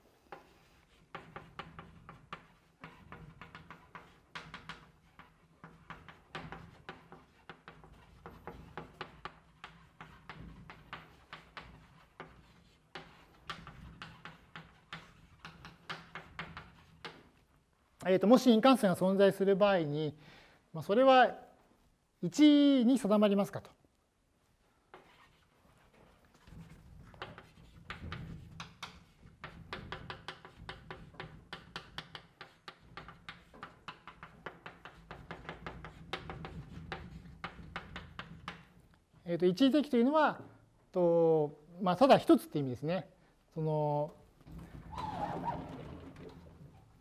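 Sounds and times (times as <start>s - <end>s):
chalk scratching on blackboard: 0.0s - 17.5s, 24.9s - 38.9s
chalk tap: 0.3s - 17.5s, 24.9s - 39.0s
sliding panel squeal: 44.6s - 46.8s.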